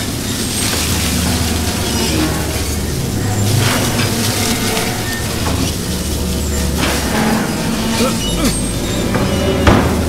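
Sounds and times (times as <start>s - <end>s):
hissing whooshes: 0.0s - 9.2s
low rumble: 0.0s - 10.0s.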